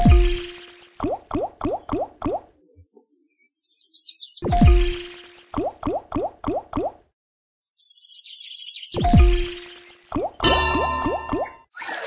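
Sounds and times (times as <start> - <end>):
ringing tones: 10.4 - 11.7.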